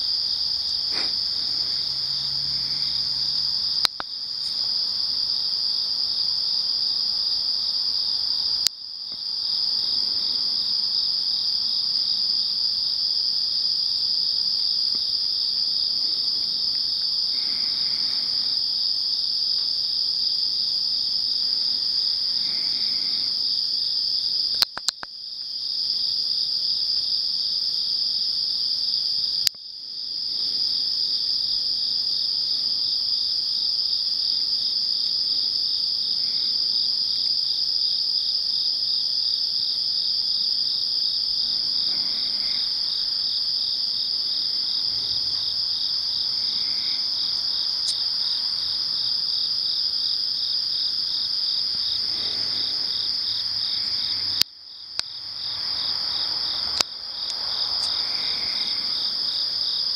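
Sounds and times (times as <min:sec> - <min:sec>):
insects chirping at night: 0:00.0 - 0:59.9.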